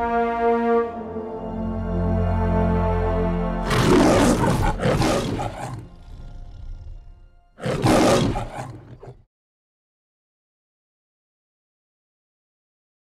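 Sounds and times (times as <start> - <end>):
held brass chord: 0.0 - 7.6
lion roaring: 3.6 - 9.3.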